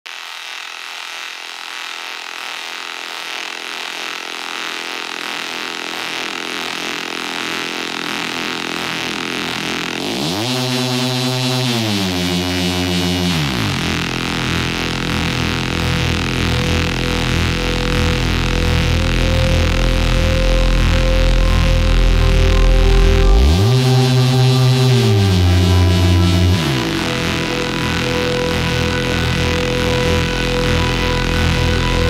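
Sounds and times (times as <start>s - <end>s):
buzzy synth tone sweeping: 0.1s - 32.0s
hissy electronic texture: 0.1s - 32.0s
low bass: 7.9s - 32.0s.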